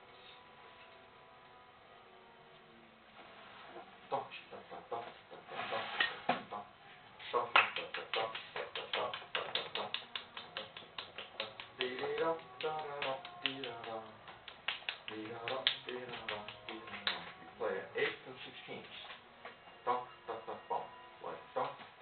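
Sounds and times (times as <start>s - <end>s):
finger snaps keeping a beat: 7.3s - 17.4s
man singing: 11.4s - 14.3s.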